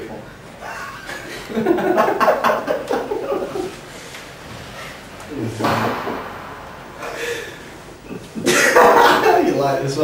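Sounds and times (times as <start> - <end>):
young men laughing: 0.6 - 3.9, 7.0 - 9.7.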